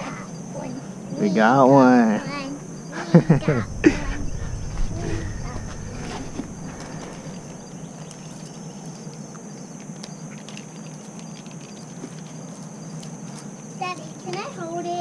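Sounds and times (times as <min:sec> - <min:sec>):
high-pitched drone: 0:03.2 - 0:07.9.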